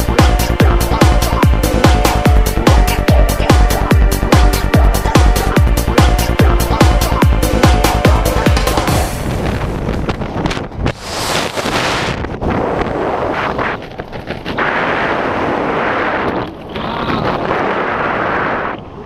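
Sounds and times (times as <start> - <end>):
wind rushing over microphone: 5.8 - 19.0.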